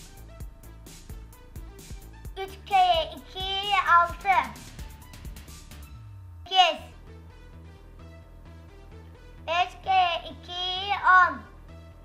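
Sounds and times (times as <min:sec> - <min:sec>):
children's music with beat: 0:00.0 - 0:12.0
high-pitched cartoon voice chanting: 0:02.4 - 0:04.6, 0:06.5 - 0:07.0, 0:09.5 - 0:11.5.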